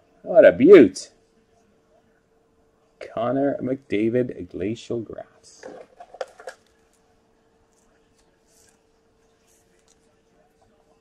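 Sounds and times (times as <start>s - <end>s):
faint steady hum: 0.0s - 11.0s
card clicking and rustling: 5.6s - 7.0s.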